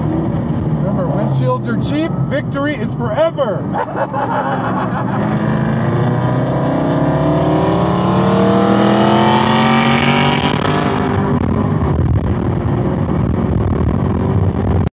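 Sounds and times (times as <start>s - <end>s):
car engine under full throttle: 0.0s - 14.9s.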